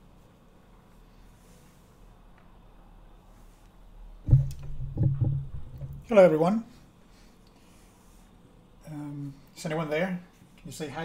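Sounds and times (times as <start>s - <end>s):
microphone handling bumps and rubbing: 4.3s - 6.1s.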